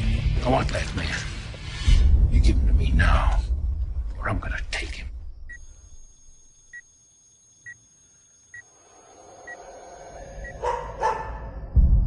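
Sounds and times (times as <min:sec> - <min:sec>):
deep rumble: 0:00.0 - 0:05.6, 0:11.6 - 0:12.0.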